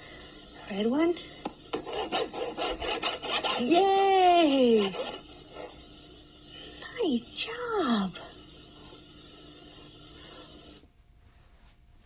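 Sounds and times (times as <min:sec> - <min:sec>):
crayon scribbling on paper: 0:01.7 - 0:05.7.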